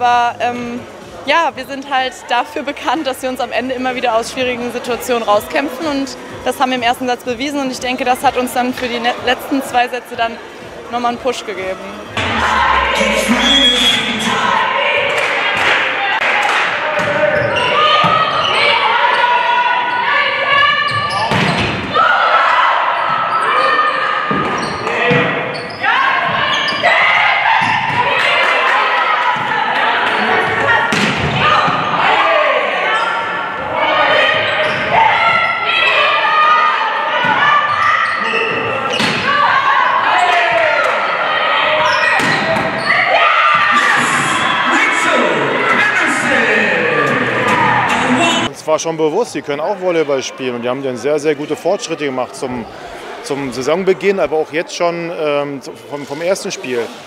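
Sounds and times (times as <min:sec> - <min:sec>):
players and spectators shouting: 0:11.9 - 0:48.6
referee's whistle: 0:12.4 - 0:14.4
volleyball hits: 0:20.9 - 0:22.0, 0:29.2 - 0:32.0, 0:38.5 - 0:39.4, 0:41.8 - 0:44.4.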